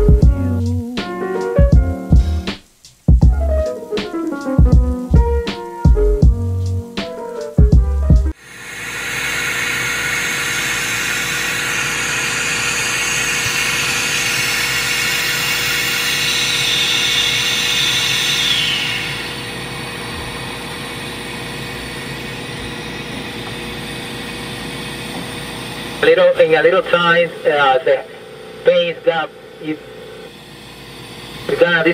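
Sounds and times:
rushing hiss of air: 8.3s - 26.0s.

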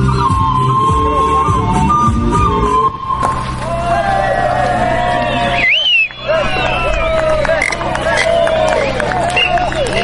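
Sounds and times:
band playing dance music: 0.0s - 3.7s
people talking: 3.8s - 10.0s.

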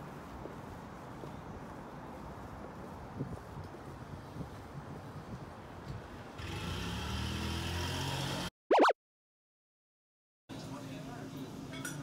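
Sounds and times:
gliding tones sound effect: 8.7s - 9.0s.

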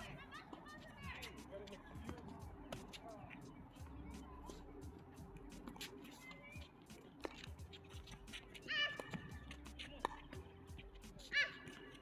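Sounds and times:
shoe squeaking on court: 0.0s - 12.0s
racket striking ball: 7.2s - 10.5s.

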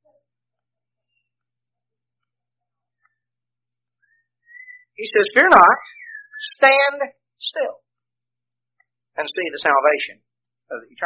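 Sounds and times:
thin whistling tone: 4.0s - 5.0s, 5.8s - 6.6s
person speaking: 5.0s - 8.0s.

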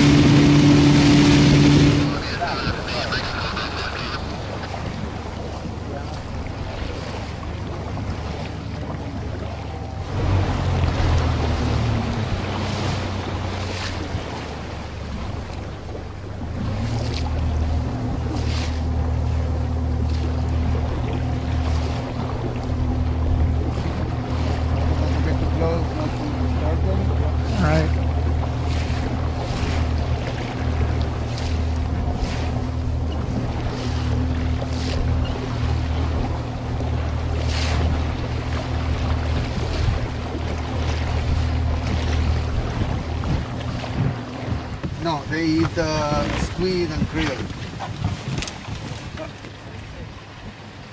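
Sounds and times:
outboard motor running: 0.0s - 50.9s
water noise: 0.0s - 50.9s
wind: 0.0s - 50.9s.

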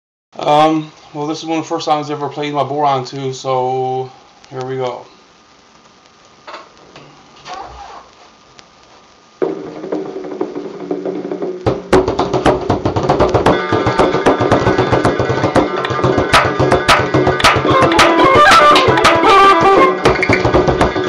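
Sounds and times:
frame drum strokes: 9.4s - 21.0s
traditional folk tune recording: 13.4s - 21.0s.

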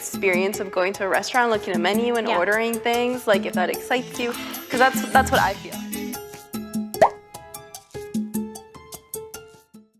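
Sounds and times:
rising bloop pop effect: 7.0s - 7.2s.

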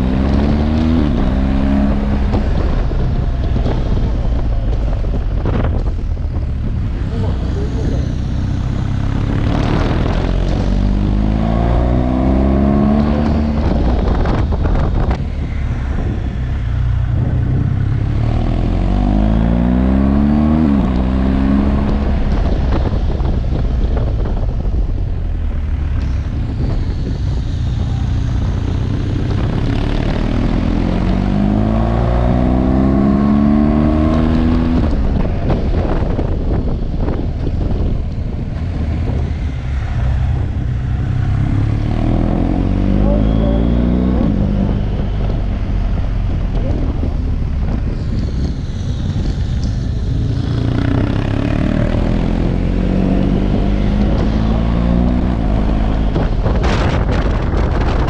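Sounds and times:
motorcycle accelerating: 0.0s - 58.0s
wind rush on microphone: 0.0s - 58.0s.

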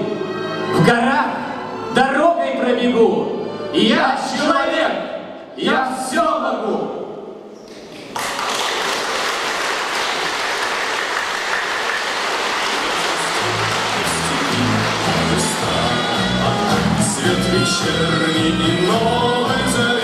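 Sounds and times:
audience applauding: 7.7s - 18.1s.

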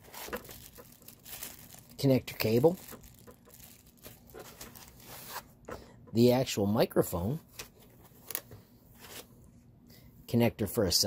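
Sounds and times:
faint rustling and scraping: 0.0s - 6.2s.

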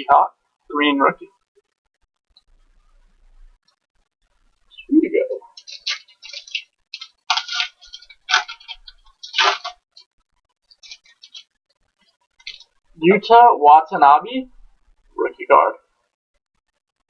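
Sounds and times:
foil wrapper crinkling: 5.6s - 10.1s, 10.7s - 11.5s.

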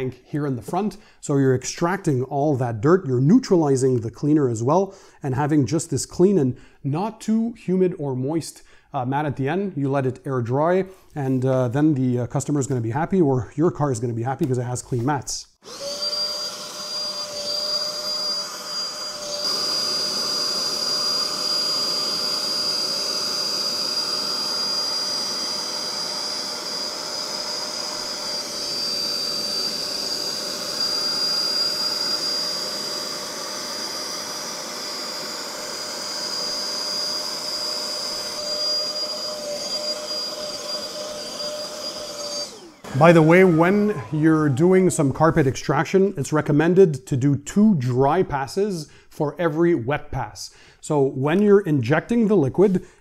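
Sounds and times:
carpet extractor suction whine: 15.6s - 45.5s.

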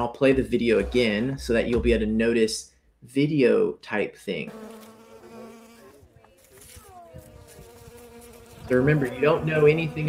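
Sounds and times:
bees buzzing: 4.5s - 10.0s.

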